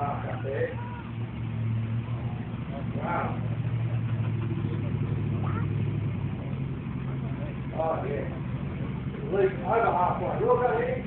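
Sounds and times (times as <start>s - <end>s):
buggy engine idling: 0.0s - 11.0s.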